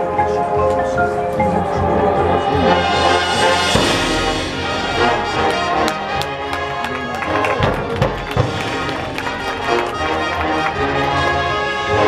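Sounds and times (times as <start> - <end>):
deep low rumble: 1.6 - 9.9
marching band brass chords: 1.6 - 12.0
single low hit: 3.6 - 6.6.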